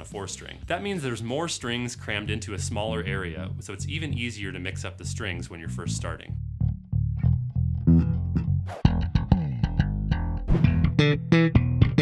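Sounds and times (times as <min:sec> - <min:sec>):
electric bass plucked notes: 0:02.0 - 0:12.0.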